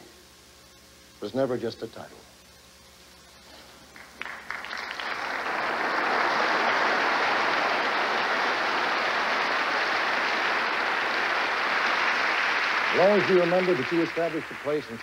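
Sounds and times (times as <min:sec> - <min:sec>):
large audience applauding: 0:03.8 - 0:15.0.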